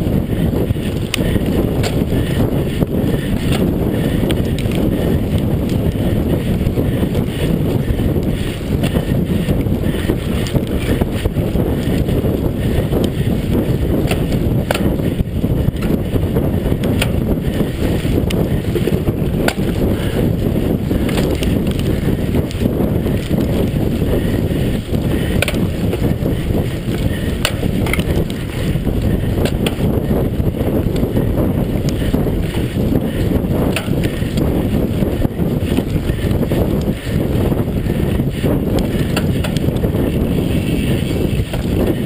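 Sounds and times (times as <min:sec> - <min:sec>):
bike rattling over bumps: 0:00.0 - 0:42.0
bike tyres rolling on dirt: 0:00.0 - 0:42.0
wind rumble on microphone: 0:00.0 - 0:42.0.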